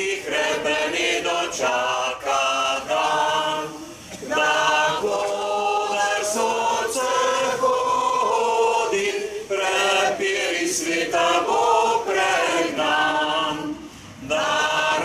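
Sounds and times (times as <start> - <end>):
crowd singing unaccompanied: 0.0 - 15.0.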